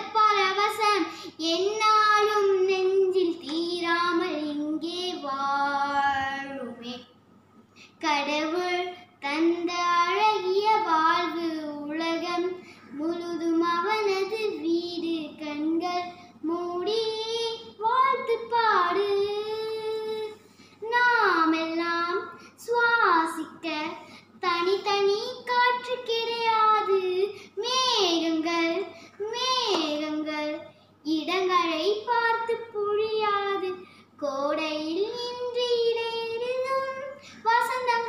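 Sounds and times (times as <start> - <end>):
girl singing unaccompanied: 0.0 - 7.2, 7.9 - 38.0.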